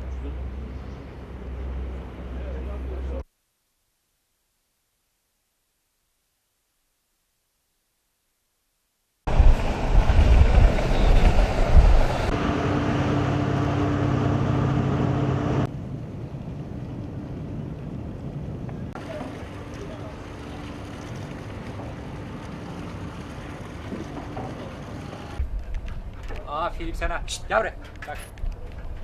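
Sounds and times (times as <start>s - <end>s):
boat engine hum: 0.0s - 3.2s, 9.3s - 15.7s, 16.3s - 29.0s
engine hum with low drone: 0.0s - 3.2s, 9.3s - 26.5s
wind noise: 9.3s - 13.9s, 14.8s - 19.1s
helicopter rotor: 9.3s - 15.7s.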